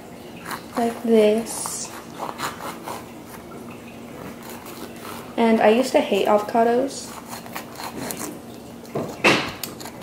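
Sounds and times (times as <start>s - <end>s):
knife scraping avocado: 0.4s - 3.5s, 4.1s - 10.0s.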